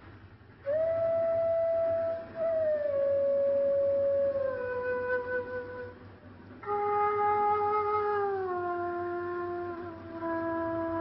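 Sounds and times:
slow flute-like melody: 0.6 - 11.0.

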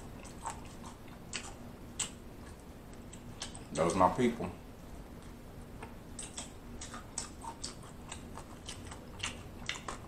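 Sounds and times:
chicken wing crunching: 6.2 - 10.0.

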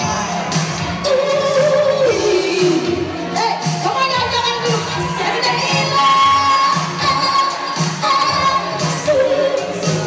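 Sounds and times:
woman and man singing duet: 0.0 - 3.6, 4.8 - 10.0
band playing steady beat: 0.0 - 10.0.

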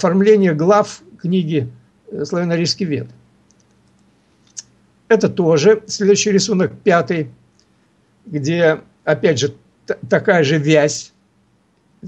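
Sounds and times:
man talking: 0.0 - 3.2, 5.1 - 7.4, 8.3 - 11.1
faint clicks: 3.1 - 4.8, 11.7 - 11.9.

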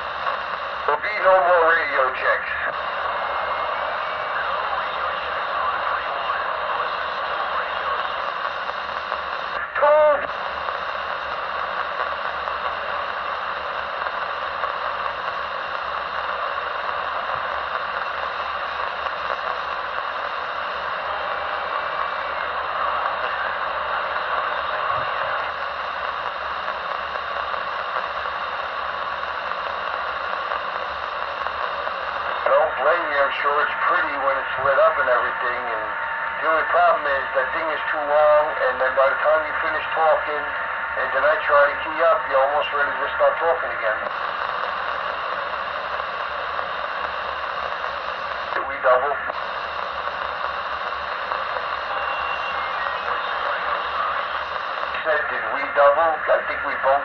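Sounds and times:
radio static hiss: 0.0 - 57.0
voice through radio static: 0.0 - 57.0.

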